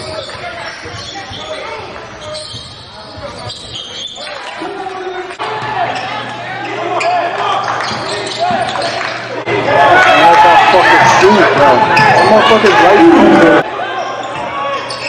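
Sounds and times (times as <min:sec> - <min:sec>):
sneakers squeaking: 0:00.0 - 0:09.3, 0:11.0 - 0:12.8, 0:14.0 - 0:15.0
voices ringing in a hall: 0:00.0 - 0:15.0.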